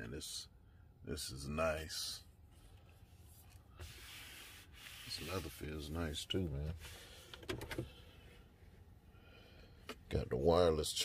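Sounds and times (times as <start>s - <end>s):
hand rubbing leather trim: 3.1s - 7.0s.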